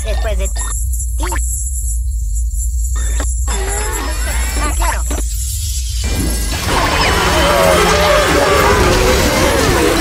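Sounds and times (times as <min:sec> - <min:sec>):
noisy sound effect: 0:06.0 - 0:10.0.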